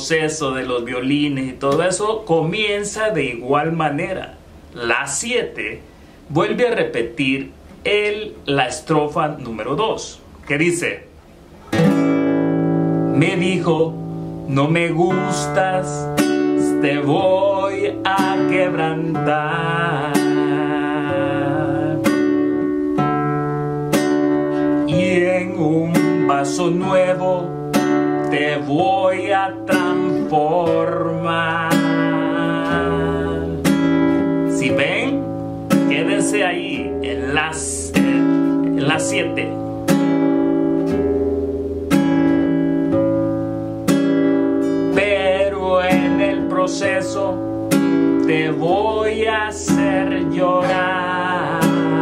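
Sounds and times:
classical guitar strummed chords: 0:11.1 - 0:52.0.

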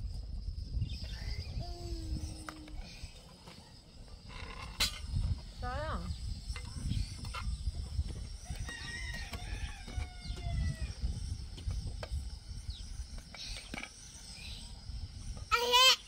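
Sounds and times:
rooster crowing: 0:08.4 - 0:11.0.

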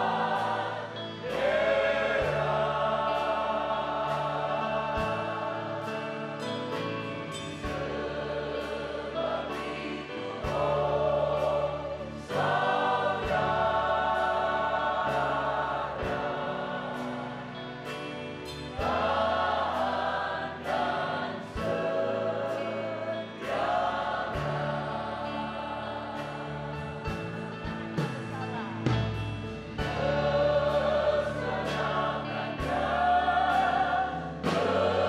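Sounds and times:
choir singing gospel song: 0:00.0 - 0:35.0
instrumental accompaniment: 0:00.0 - 0:35.0.

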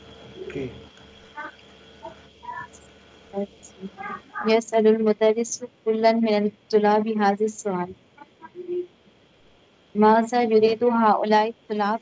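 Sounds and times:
faint hesitant voice: 0:00.3 - 0:00.8, 0:03.4 - 0:04.6, 0:08.2 - 0:08.9.

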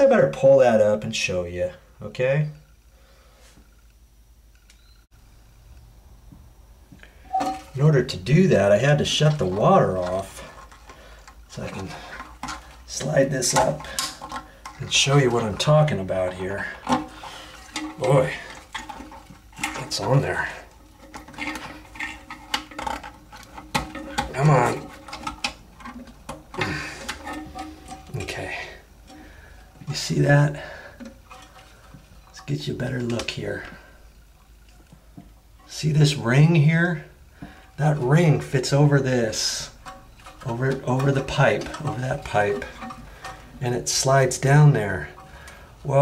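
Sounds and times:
steady low hum: 0:00.0 - 0:46.0.

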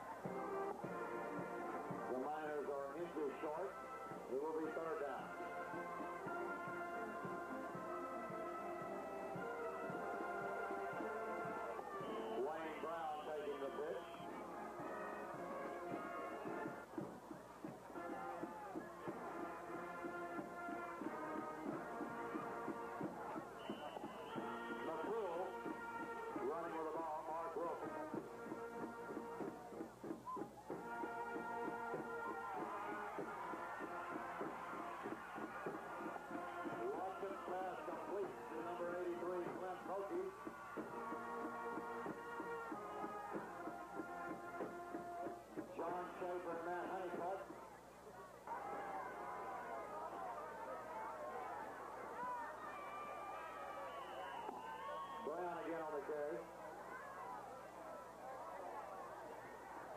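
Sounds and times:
crowd voices: 0:00.0 - 0:59.9
band playing held chords: 0:30.7 - 0:47.5.

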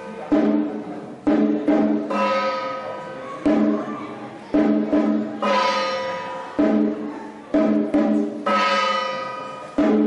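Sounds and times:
struck metal percussion ringing: 0:00.0 - 0:10.0.

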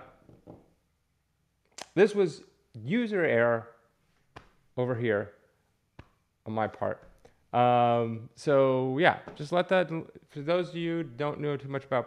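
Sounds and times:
man speaking: 0:01.8 - 0:03.6, 0:04.8 - 0:05.3, 0:06.5 - 0:12.0.

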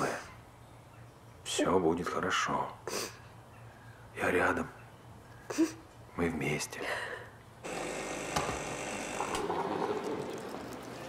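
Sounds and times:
vending machine whirring: 0:07.6 - 0:10.4.

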